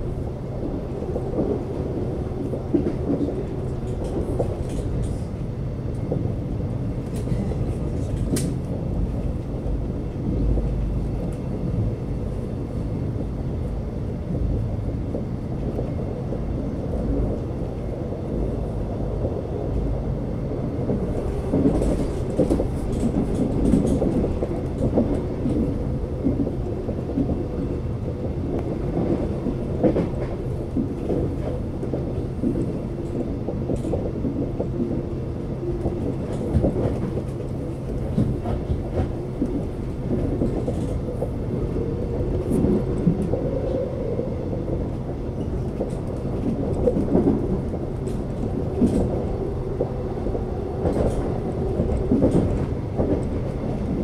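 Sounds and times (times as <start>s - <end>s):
train hum and rumble: 0.0s - 54.0s.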